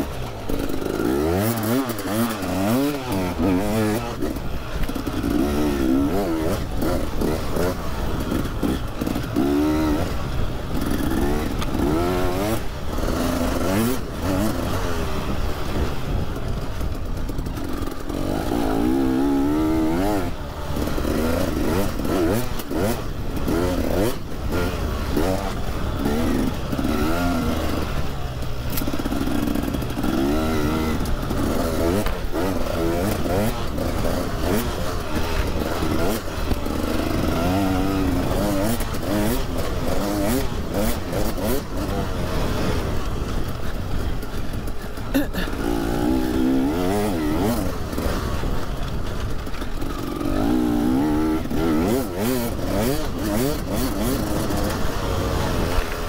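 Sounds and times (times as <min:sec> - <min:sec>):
motorbike engine revving: 0:00.0 - 0:56.0.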